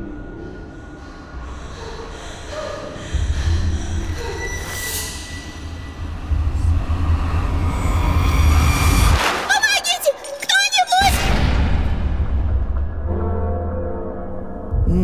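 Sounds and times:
deep rumble: 0.0 - 9.2
faint eerie tones: 0.0 - 9.2.

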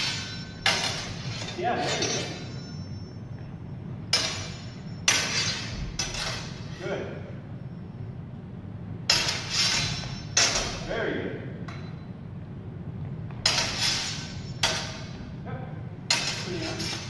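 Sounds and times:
swords clashing and ringing: 0.0 - 3.2, 4.0 - 6.9, 9.1 - 11.0, 13.4 - 15.3, 16.1 - 17.0.

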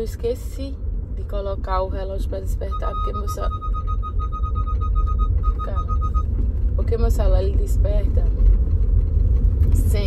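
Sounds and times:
road and engine rumble: 0.0 - 10.0
rapid electronic beeping: 2.6 - 6.3.

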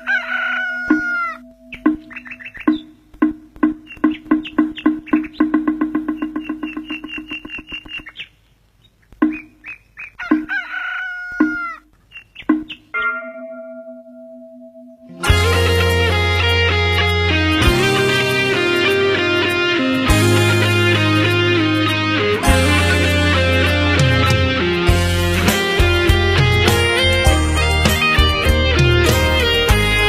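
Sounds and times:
rooster crowing: 0.0 - 1.5, 10.2 - 11.8
background music with struck beats: 0.9 - 8.0, 15.2 - 30.0.

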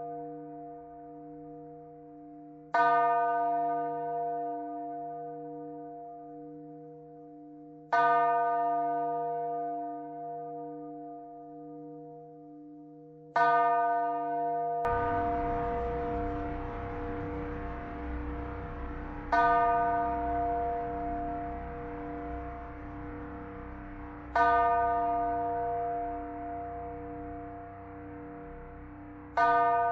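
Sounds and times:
deep bell-like chime: 14.9 - 29.9
room hiss and rumble: 14.9 - 29.9
sustained low drone: 14.9 - 29.9.

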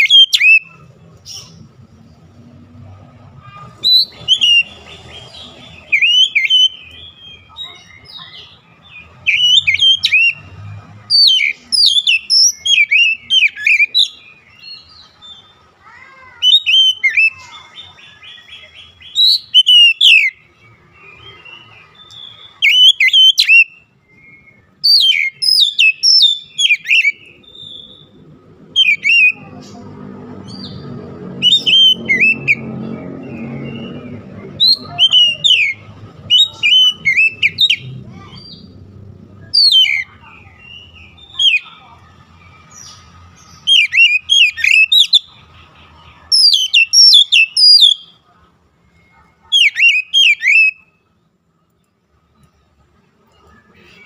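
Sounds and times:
bird singing whistles and chirps: 0.0 - 0.8, 3.8 - 15.4, 16.4 - 29.5, 30.5 - 38.8, 39.4 - 41.7, 42.5 - 45.5, 46.3 - 48.2, 48.9 - 51.1.

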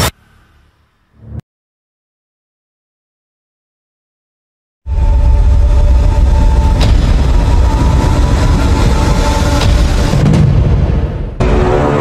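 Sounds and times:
loud deep rumble: 4.9 - 12.0.

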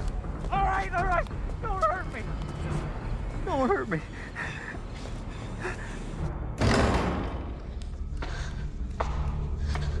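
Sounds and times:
low dramatic music drone: 0.0 - 10.0.

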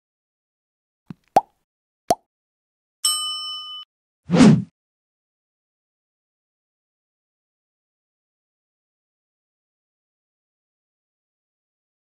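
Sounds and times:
bell-like notification ding: 3.0 - 3.9.

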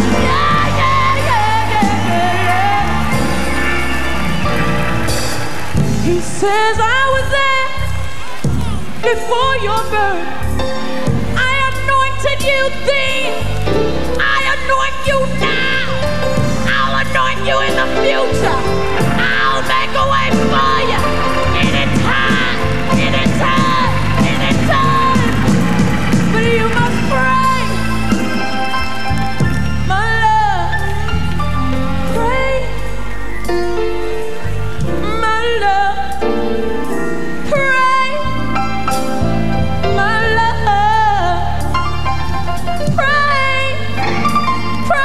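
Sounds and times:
gospel band with bass line: 0.0 - 45.0.

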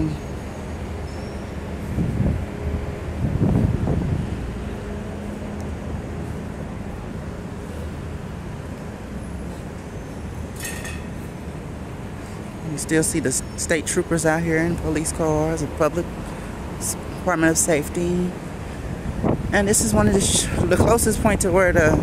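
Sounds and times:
low rumbling noise: 0.0 - 13.3
city traffic hum: 0.0 - 22.0.

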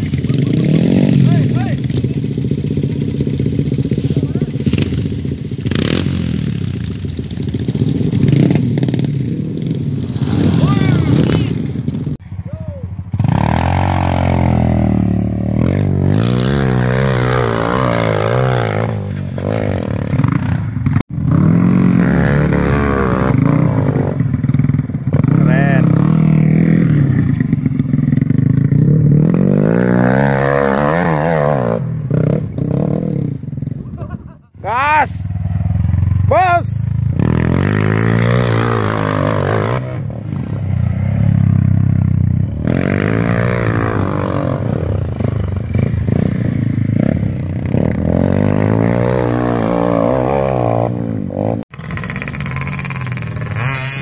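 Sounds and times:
motorcycle engine revving hard: 0.0 - 12.2, 13.1 - 34.2, 35.2 - 54.0.

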